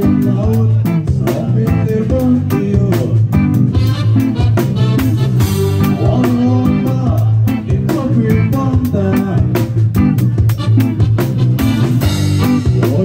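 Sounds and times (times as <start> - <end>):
person singing: 0.0 - 4.7, 5.4 - 9.8, 12.3 - 13.0
reggae band playing: 0.0 - 13.0.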